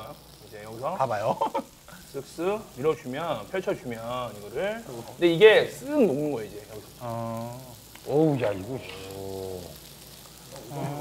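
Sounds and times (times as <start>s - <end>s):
man saying ooh: 7.0s - 7.8s, 8.6s - 9.8s, 10.6s - 11.0s.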